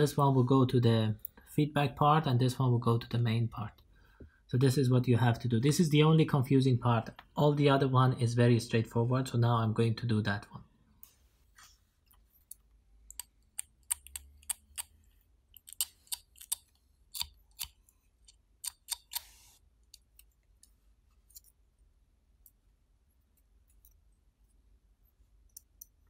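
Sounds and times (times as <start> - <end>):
sharp clicks and ticks: 12.4 - 19.2.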